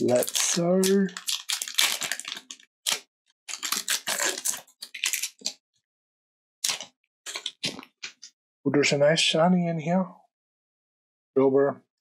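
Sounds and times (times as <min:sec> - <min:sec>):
cards rustling: 0:00.0 - 0:05.5
foil wrapper crackling: 0:00.0 - 0:05.6.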